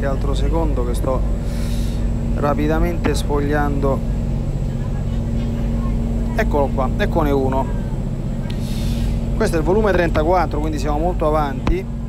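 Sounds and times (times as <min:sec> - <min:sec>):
low background hum: 0:00.0 - 0:12.0.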